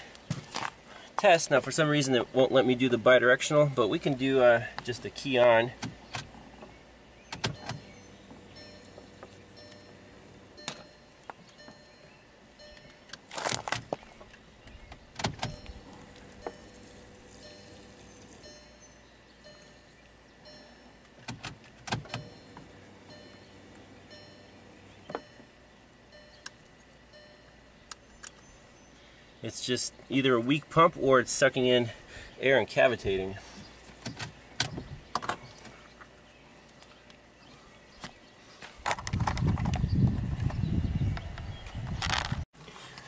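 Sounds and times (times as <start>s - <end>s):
fuel pump whirring: 3.7s - 30.1s.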